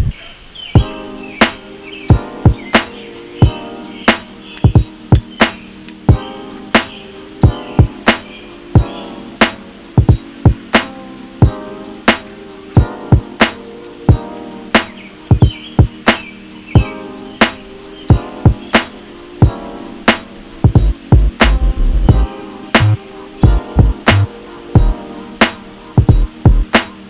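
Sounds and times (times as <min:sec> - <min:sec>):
melodic music with percussive beat: 0:00.8 - 0:27.0.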